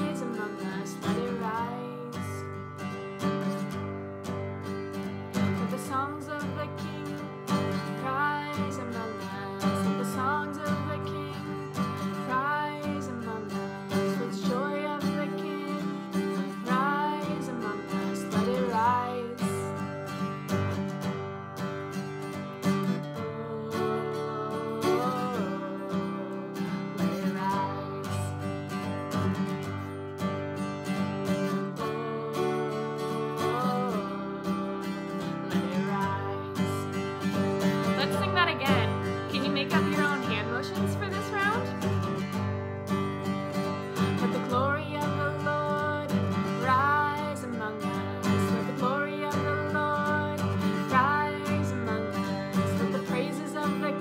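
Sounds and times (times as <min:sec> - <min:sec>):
woman singing: 0:00.0 - 0:20.8, 0:22.9 - 0:30.0, 0:31.3 - 0:54.0
acoustic guitar strumming: 0:00.0 - 0:54.0.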